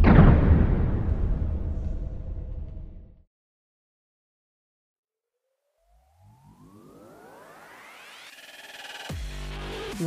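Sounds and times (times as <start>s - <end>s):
low rumble: 0.0s - 3.2s
synthesized rising sweep: 5.8s - 10.0s.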